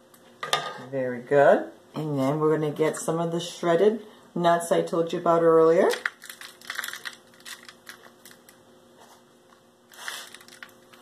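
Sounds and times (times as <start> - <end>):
crumbs ticking on foil: 5.9 - 8.6, 9.9 - 11.0.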